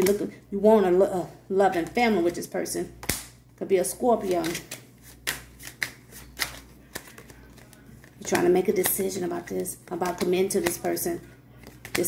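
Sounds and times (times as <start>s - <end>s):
cards shuffled by hand: 4.2s - 11.0s, 11.6s - 12.0s.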